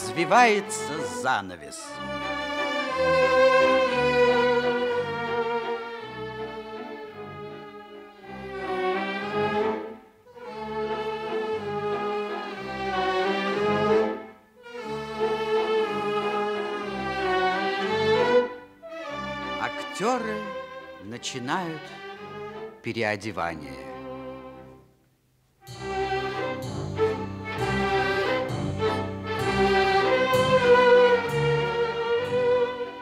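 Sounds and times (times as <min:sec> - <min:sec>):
small orchestra playing: 0:00.0 - 0:25.0, 0:25.6 - 0:33.0.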